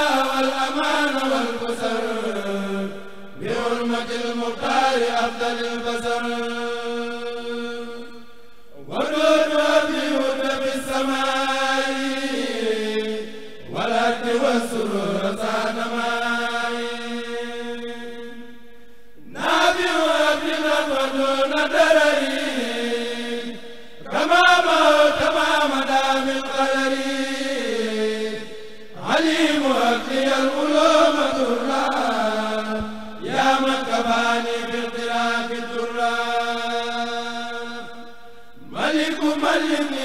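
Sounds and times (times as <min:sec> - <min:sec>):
men chanting over microphones: 0:00.0 - 0:40.0.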